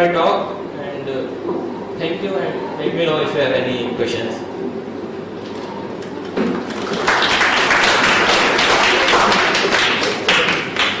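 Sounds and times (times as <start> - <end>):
audience applauding: 6.6 - 11.0.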